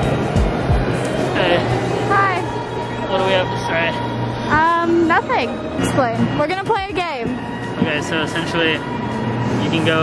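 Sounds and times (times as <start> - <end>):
music playing: 0.0 - 10.0
steady background hum: 0.0 - 10.0.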